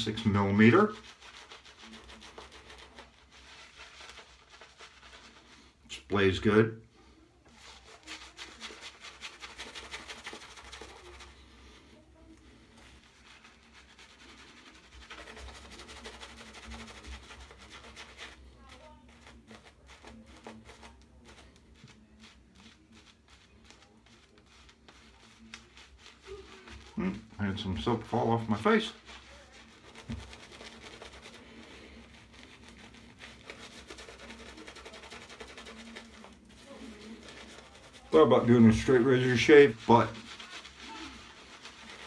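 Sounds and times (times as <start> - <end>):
shaving brush rubbing on skin: 0.0 - 5.8, 7.4 - 42.0.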